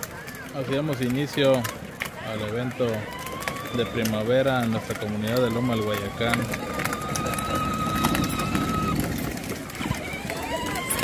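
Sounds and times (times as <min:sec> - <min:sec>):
bustle of movement: 0:00.0 - 0:11.0
crowd voices: 0:00.0 - 0:11.0.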